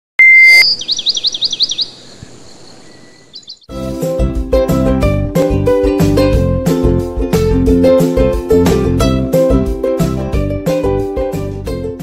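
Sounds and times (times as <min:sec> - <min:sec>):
loud electronic beep: 0:00.2 - 0:00.8
short chirps: 0:00.2 - 0:01.2
fast warbling chirp: 0:00.2 - 0:03.7
plucked string music: 0:03.7 - 0:12.0.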